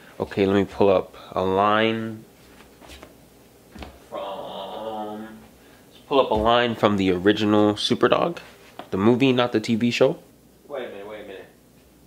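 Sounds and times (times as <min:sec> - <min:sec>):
man drawing out a vowel: 0:04.1 - 0:05.5.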